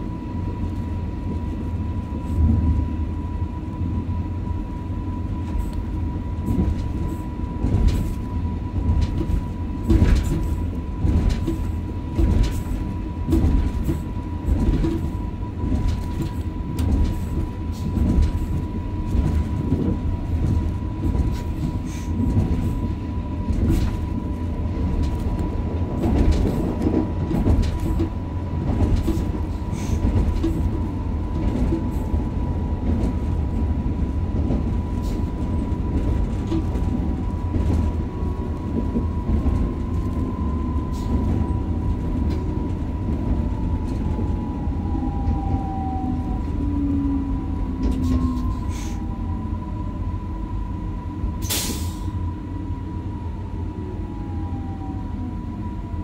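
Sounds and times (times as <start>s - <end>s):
train rolling on rails: 0.0s - 56.0s
knocks of train: 6.4s - 22.9s, 23.5s - 32.1s.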